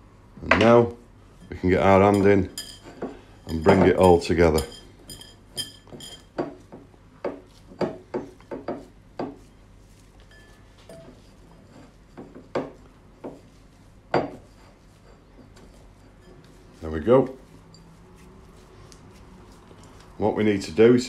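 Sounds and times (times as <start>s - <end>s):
hand kneading dough: 5.5s - 21.0s.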